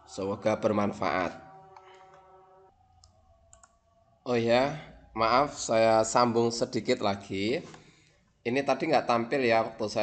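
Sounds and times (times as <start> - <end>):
computer mouse clicks: 1.6 - 3.9.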